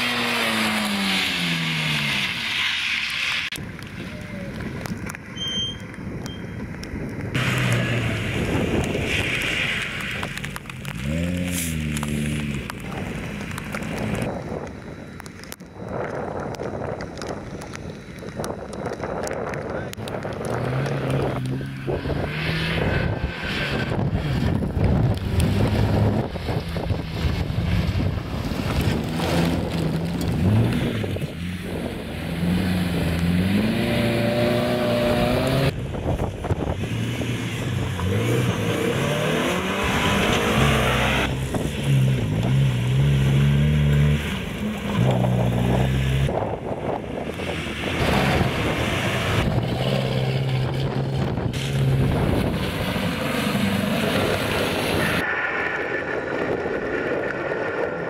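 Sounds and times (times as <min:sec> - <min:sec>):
rally car engines revving: 0:00.0 - 0:05.2, 0:07.3 - 0:14.4, 0:18.4 - 0:58.0
tyres on gravel: 0:00.0 - 0:58.0.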